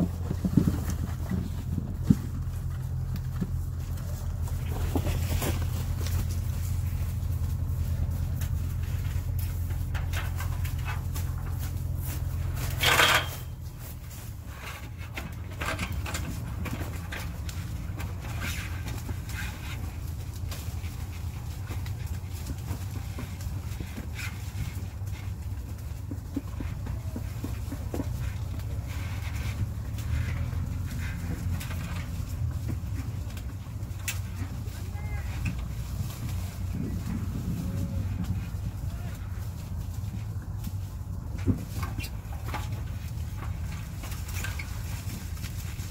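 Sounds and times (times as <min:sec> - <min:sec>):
leaves and branches rustling: 0:00.0 - 0:45.9
steady low rumble: 0:00.0 - 0:45.9.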